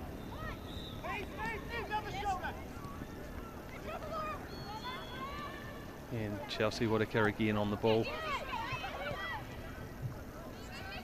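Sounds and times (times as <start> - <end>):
players shouting: 0.0 - 9.8
low rumble of outdoor noise: 0.0 - 11.0.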